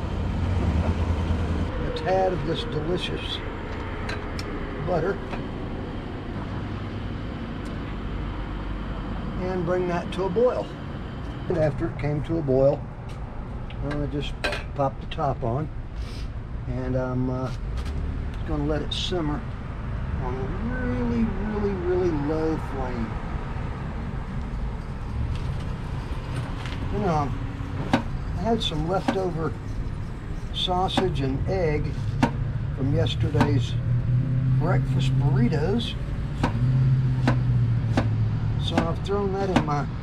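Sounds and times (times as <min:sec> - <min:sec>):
road traffic rumble: 0:00.0 - 0:40.0.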